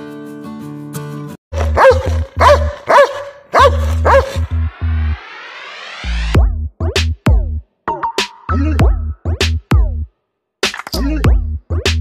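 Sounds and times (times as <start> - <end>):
dog barking deeply: 1.6 - 4.4
rising whoosh: 3.9 - 6.5
heavy music beat: 4.2 - 12.0.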